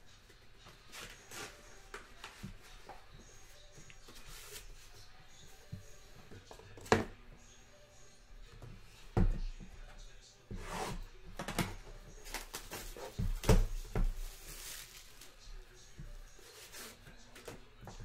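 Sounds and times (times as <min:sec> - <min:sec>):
plastic shrink-wrap crinkling and tearing: 0:14.2 - 0:15.4.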